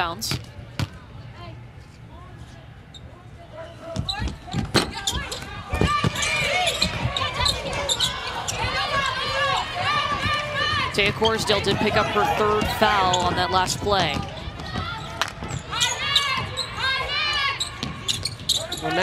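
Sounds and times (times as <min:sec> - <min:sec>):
sneakers squeaking on hardwood: 0:04.0 - 0:19.0.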